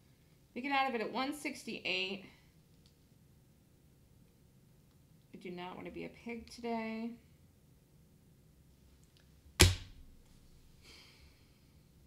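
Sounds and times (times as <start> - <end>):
sharp knock: 9.6 - 10.2.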